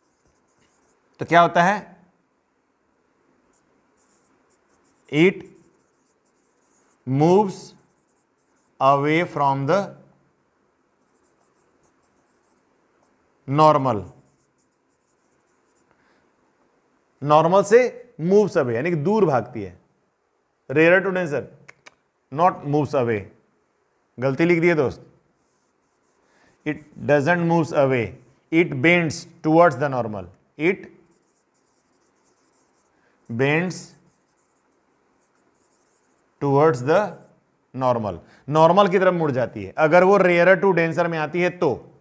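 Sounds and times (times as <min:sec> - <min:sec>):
marker pen scratching on whiteboard: 0:00.0 - 0:01.1, 0:03.5 - 0:09.4, 0:11.0 - 0:16.0, 0:25.4 - 0:28.4, 0:31.0 - 0:36.9
man speaking: 0:01.2 - 0:02.0, 0:05.1 - 0:05.5, 0:08.8 - 0:10.0, 0:13.5 - 0:14.2, 0:26.7 - 0:30.9, 0:33.3 - 0:34.0, 0:36.4 - 0:41.8.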